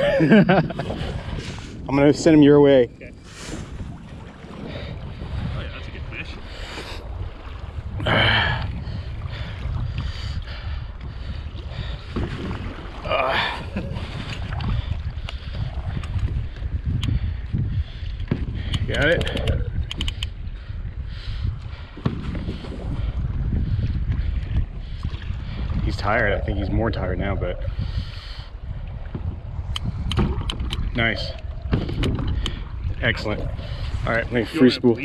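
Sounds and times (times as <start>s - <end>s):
water around kayak: 0.0s - 35.0s
wind on microphone: 0.0s - 35.0s.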